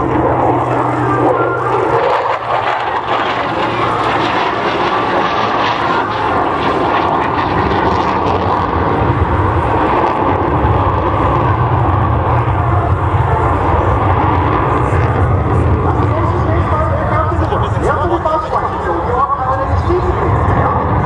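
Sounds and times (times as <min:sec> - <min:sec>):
jet engine with afterburner: 0:00.0 - 0:21.0.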